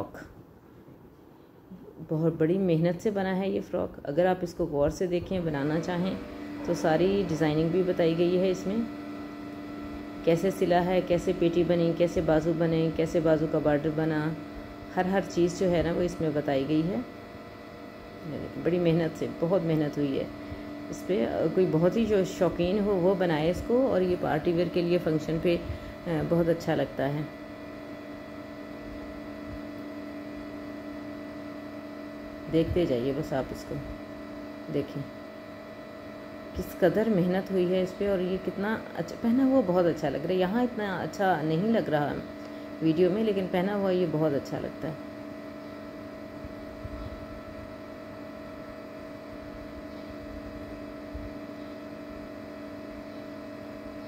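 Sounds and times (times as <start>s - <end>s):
steady electrical hum: 0.0s - 54.0s.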